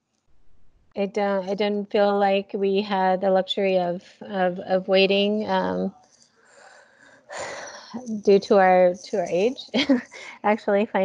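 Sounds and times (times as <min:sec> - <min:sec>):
person breathing: 0:06.4 - 0:07.9
person speaking: 0:07.4 - 0:11.0.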